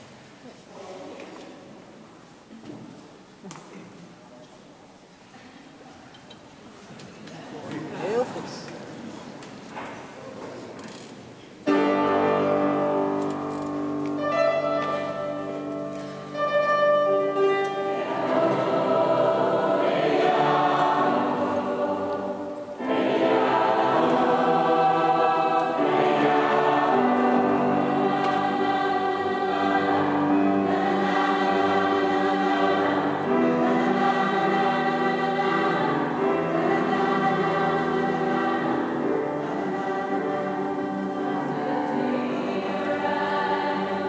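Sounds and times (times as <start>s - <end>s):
mixed choir singing held chords: 11.7s - 44.0s.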